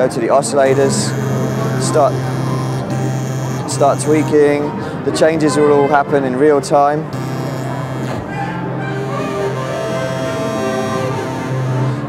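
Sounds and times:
sustained synthesizer tone: 0.0s - 12.0s.

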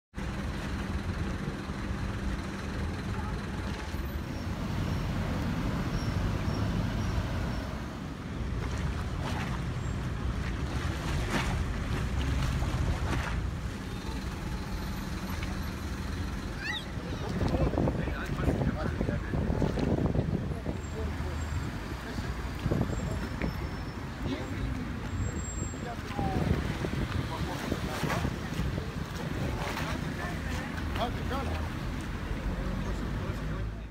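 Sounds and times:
distant engine noise: 0.2s - 33.9s
wind on microphone: 16.9s - 21.0s, 22.4s - 24.5s, 26.1s - 30.0s.

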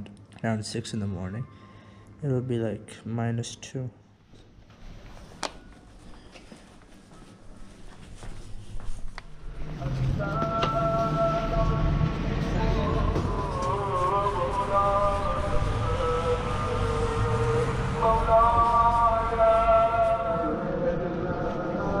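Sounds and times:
man chanting in long notes: 9.6s - 22.0s.

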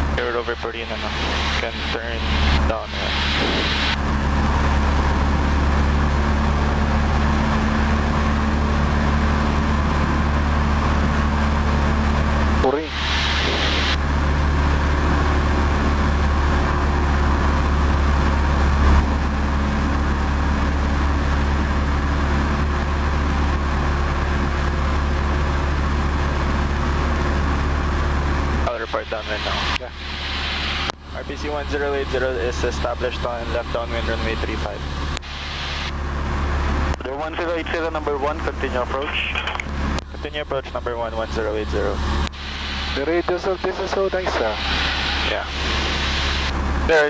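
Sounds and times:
light aircraft engine droning: 0.0s - 47.0s.

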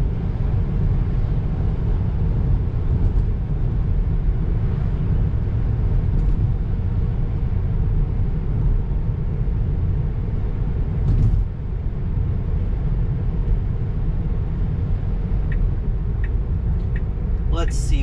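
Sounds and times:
road and tyre rumble: 0.0s - 18.0s.

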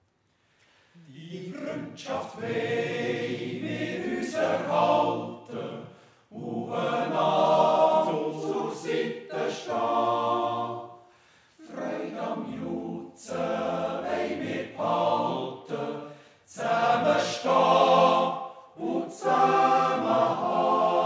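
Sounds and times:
men's choir yodelling a cappella: 1.1s - 11.0s, 11.6s - 21.0s.

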